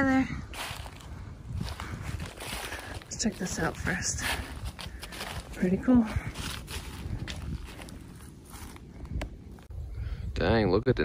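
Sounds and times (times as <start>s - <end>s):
footsteps through dry leaves: 0.5s - 8.9s.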